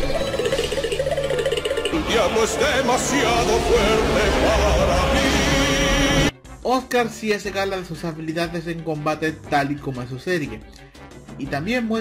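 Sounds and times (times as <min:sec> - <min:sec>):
dense steady soundtrack music: 0:00.0 - 0:11.8.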